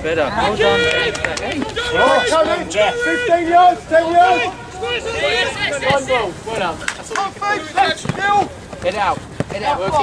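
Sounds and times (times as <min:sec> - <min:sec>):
people shouting calls: 0:00.4 - 0:10.0.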